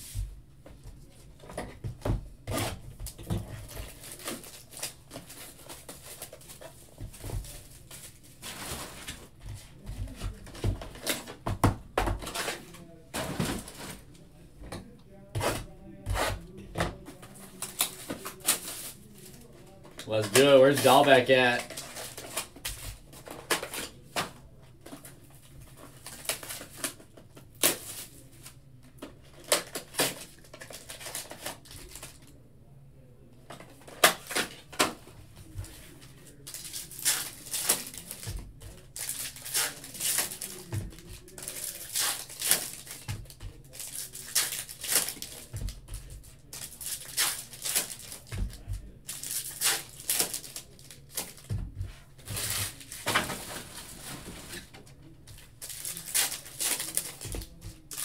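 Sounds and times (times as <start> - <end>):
foil wrappers crinkling and tearing: 2.6 - 9.4, 15.4 - 24.3, 25.7 - 28.6, 29.3 - 32.3, 35.8 - 51.6, 52.2 - 54.8, 55.4 - 58.0.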